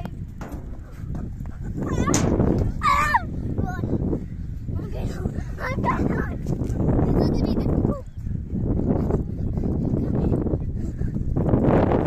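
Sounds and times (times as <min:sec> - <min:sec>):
steady low rumble: 0:00.0 - 0:12.0
child's high-pitched shout: 0:02.8 - 0:04.0.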